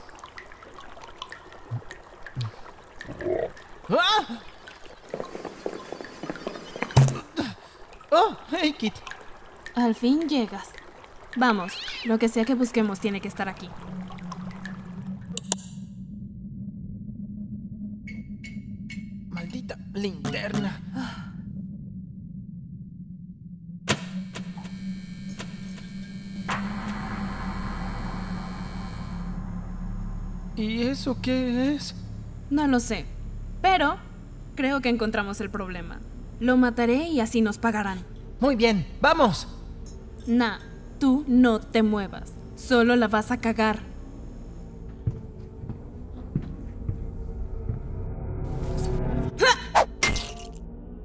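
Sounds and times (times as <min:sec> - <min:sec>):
steady low hum: 0:12.5 - 0:49.4
steady low drone: 0:13.6 - 0:49.5
loud electric buzz: 0:23.9 - 0:37.4, 0:39.5 - 0:45.1
slow soft footsteps: 0:44.7 - 0:48.2.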